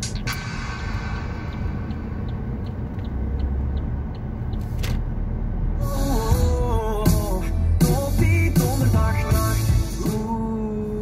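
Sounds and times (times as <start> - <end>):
rush of noise: 0.0 - 3.1
car engine and road rumble: 0.0 - 11.0
light repeating tick: 1.5 - 4.8
music: 5.8 - 11.0.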